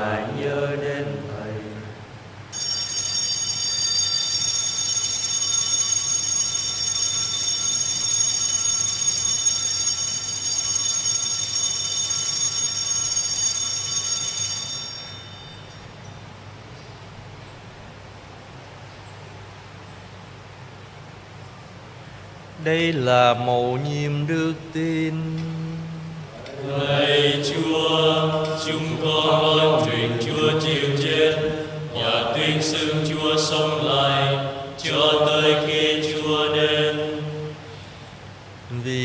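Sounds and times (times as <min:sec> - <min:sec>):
altar bells ringing: 0:02.5 - 0:16.5.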